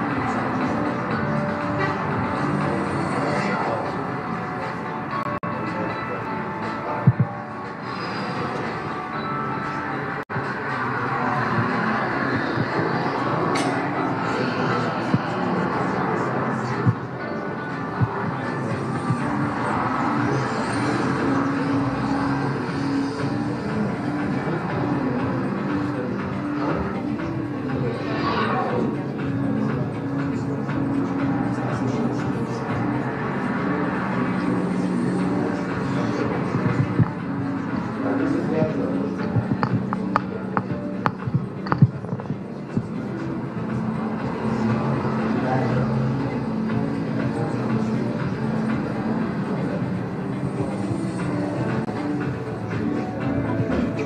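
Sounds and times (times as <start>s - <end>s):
dense rushing sound over loudspeakers: 10.0s - 29.7s, 31.6s - 51.5s.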